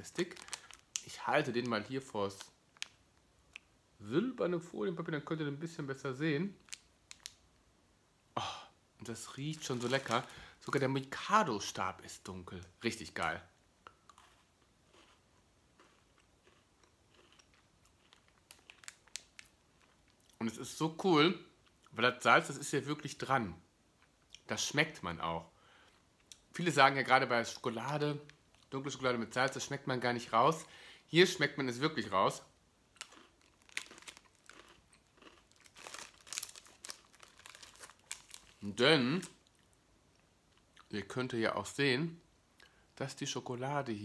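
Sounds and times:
biscuit stick crunching: 9.6s - 10.8s, 13.9s - 15.2s, 15.8s - 20.4s, 32.9s - 38.6s.

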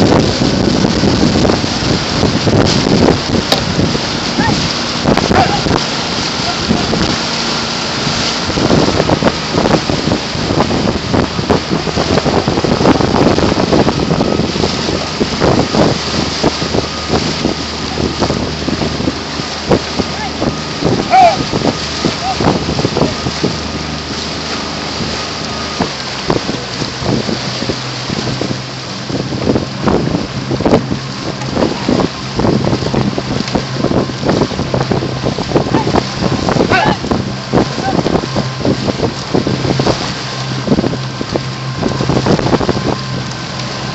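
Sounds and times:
motor hum: 0.0s - 43.9s
paddles splashing in water: 0.0s - 43.9s
wind buffeting microphone: 0.0s - 43.9s.

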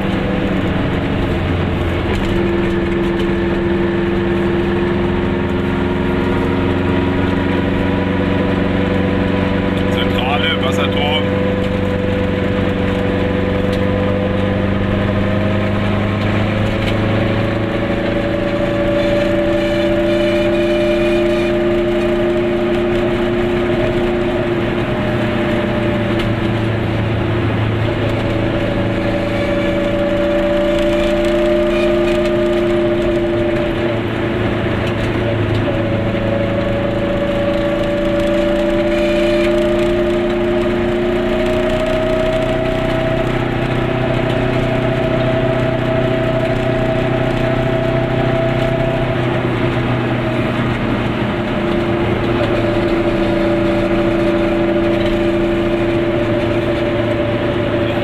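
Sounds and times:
road noise: 0.0s - 58.0s
two-stroke car engine: 0.0s - 58.0s.

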